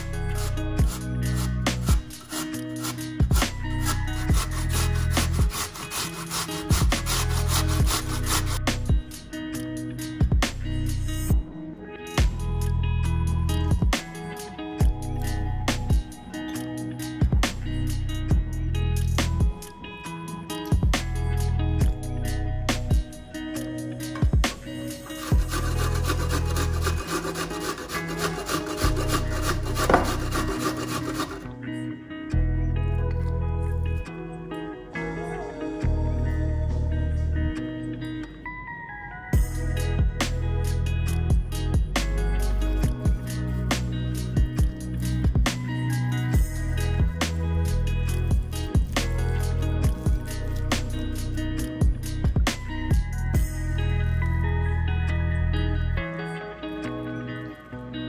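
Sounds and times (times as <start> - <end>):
potato scraped on metal grater: 0.0 - 8.6, 25.1 - 31.5
background music with low beat: 0.0 - 31.5, 39.4 - 56.0.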